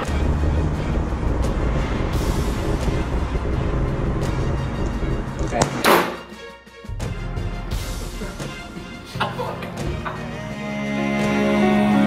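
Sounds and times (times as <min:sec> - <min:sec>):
launcher firing blast: 0:00.0 - 0:06.3
background music: 0:00.0 - 0:12.0.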